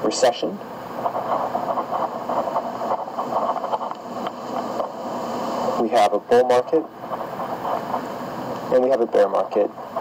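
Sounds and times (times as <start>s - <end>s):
stylus rubbing on tablet screen: 1.0s - 5.7s, 7.1s - 8.1s.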